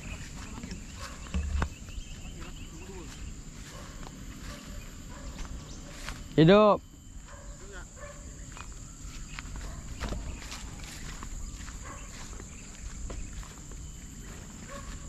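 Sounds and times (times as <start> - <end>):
footsteps in grass: 0.0 - 15.0.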